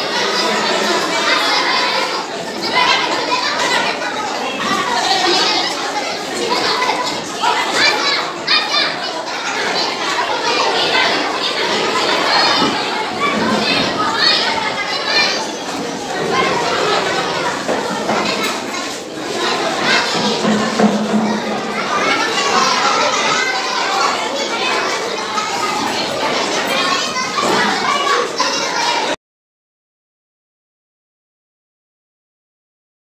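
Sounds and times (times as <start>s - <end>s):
children chattering and calling out: 0.0s - 29.2s
high child's voice: 0.0s - 29.2s.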